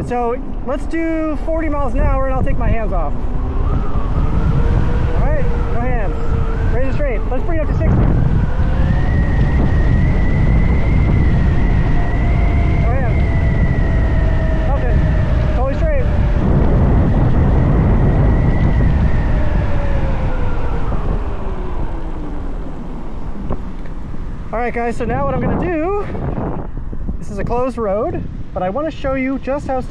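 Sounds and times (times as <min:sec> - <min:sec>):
wind rush on microphone: 0:00.0 - 0:29.9
electric motor whining: 0:02.8 - 0:24.5.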